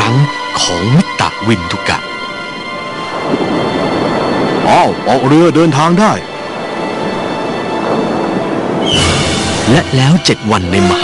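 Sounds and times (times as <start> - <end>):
sea water rushing: 1.6 - 11.0.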